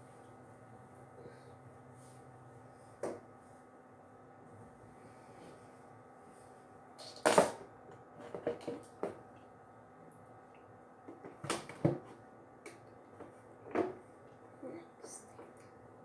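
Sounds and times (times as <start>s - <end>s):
faint steady hum: 0.0s - 16.0s
knocks and clatters of handling: 8.2s - 9.2s.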